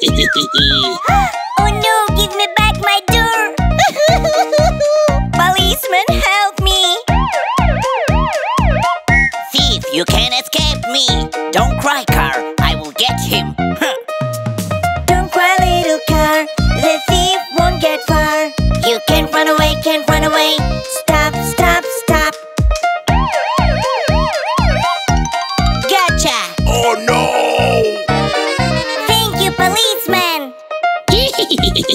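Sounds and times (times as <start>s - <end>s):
cartoon police siren wailing: 0.2s - 2.1s, 7.1s - 9.4s, 23.1s - 28.1s
backing drum beat: 3.6s - 13.0s, 21.6s - 27.2s.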